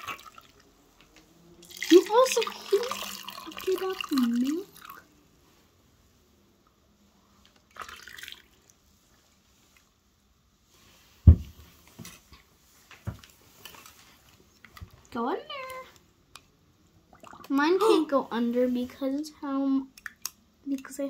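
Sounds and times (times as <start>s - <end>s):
milk pouring into a mug: 1.6s - 5.0s, 7.7s - 8.8s.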